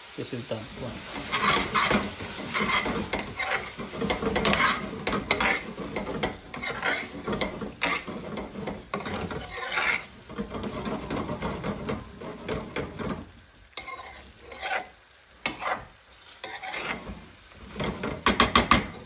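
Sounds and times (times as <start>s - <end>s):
light sizzle: 0.0s - 19.0s
metal spoon scraping a pan: 0.7s - 19.0s.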